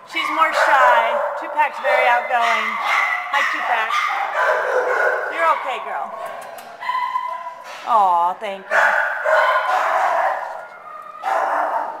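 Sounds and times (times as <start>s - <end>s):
dogs barking: 0.1s - 7.7s, 8.7s - 12.0s.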